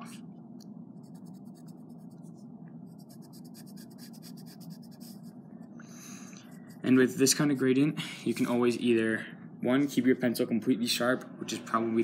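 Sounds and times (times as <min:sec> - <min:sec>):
pencil scratching on paper: 0:01.0 - 0:05.4.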